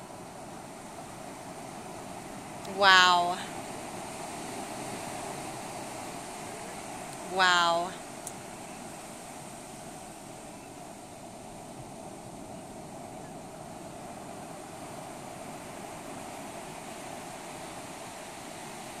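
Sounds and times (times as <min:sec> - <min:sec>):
ocean waves breaking: 0:00.0 - 0:19.0.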